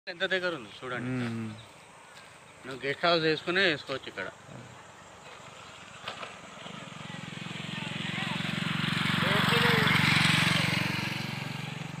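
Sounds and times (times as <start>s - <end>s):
motorcycle passing: 0.3s - 12.0s.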